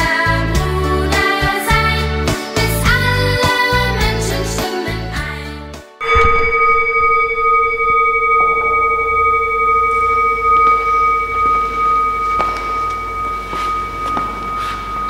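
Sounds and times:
singing bowl ringing: 6.0 - 15.0.

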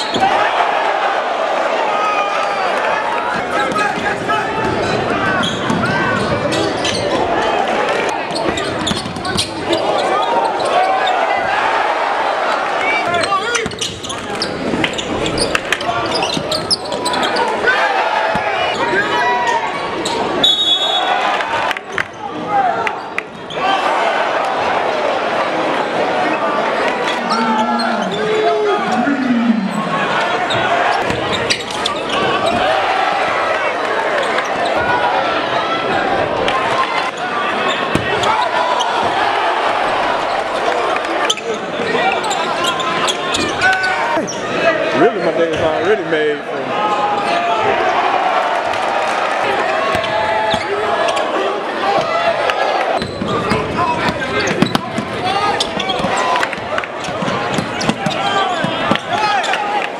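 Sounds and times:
crowd voices and shouting: 0.0 - 59.9
sneakers squeaking: 4.6 - 7.3, 8.3 - 11.3, 13.1 - 17.6, 23.0 - 23.7, 27.0 - 33.0, 41.2 - 44.5, 49.8 - 51.4, 53.0 - 59.6.

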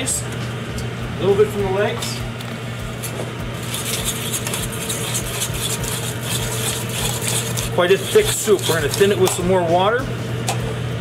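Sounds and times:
steady low hum: 0.0 - 11.0
spoon scraping a metal pot: 3.6 - 9.4.

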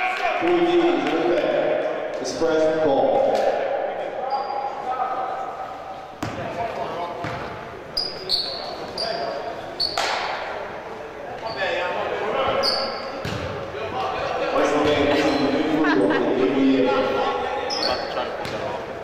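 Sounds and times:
shoes squeaking on gym floor: 4.2 - 4.8, 7.2 - 10.1, 11.4 - 11.8, 12.4 - 13.4, 17.7 - 18.7
basketball bouncing: 6.2 - 6.5, 7.2 - 7.6, 13.2 - 13.6.

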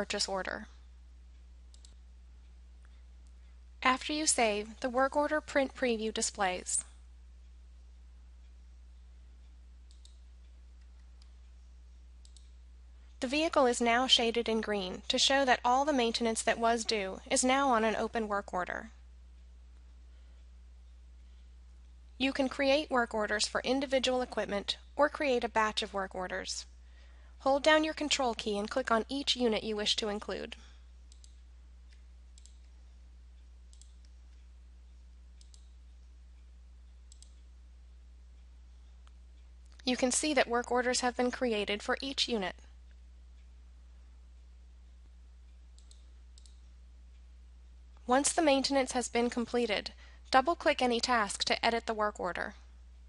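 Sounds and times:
steady low hum: 0.0 - 53.0
faint computer mouse clicks: 1.7 - 2.0, 9.9 - 10.2, 12.2 - 12.6, 31.1 - 32.8, 33.7 - 34.5, 35.4 - 35.8, 37.1 - 37.5, 45.5 - 46.7.

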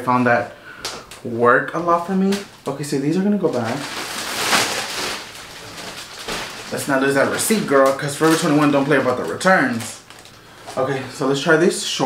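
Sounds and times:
plastic bag rustling: 1.8 - 11.6.

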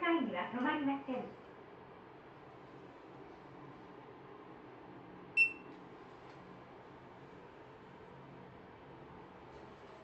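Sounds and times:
short high beep: 5.4 - 5.7.

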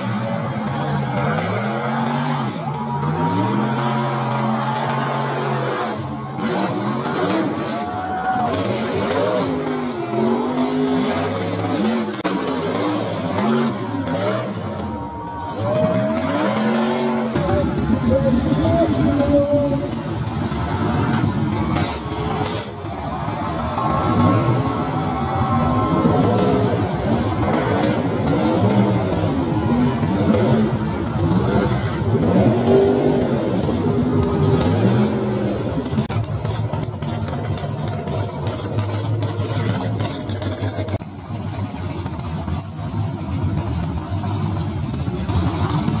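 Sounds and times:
truck engines revving: 0.0 - 46.0.

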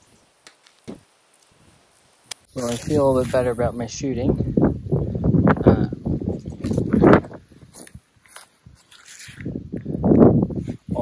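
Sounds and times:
footsteps on grass: 0.0 - 4.1, 6.4 - 10.9
person speaking: 2.5 - 4.6.

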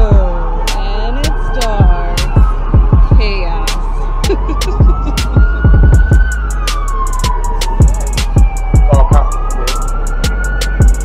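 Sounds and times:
hip-hop beat: 0.0 - 11.0
siren wailing: 0.0 - 11.0.

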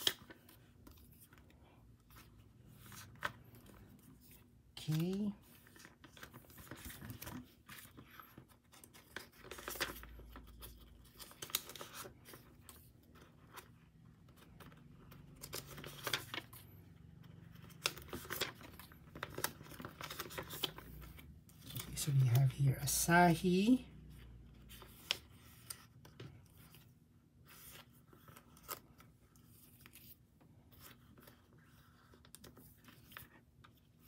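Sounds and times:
cards against plastic sleeves: 0.0 - 34.0.

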